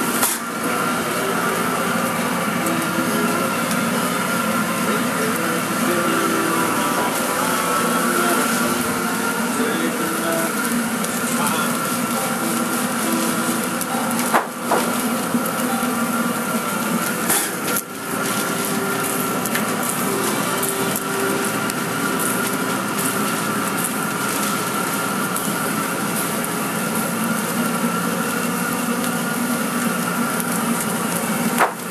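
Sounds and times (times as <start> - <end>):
motor hum: 0.0 - 31.9.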